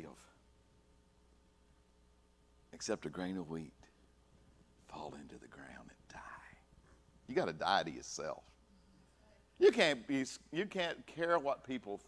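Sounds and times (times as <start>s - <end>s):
man whispering: 4.8s - 7.0s.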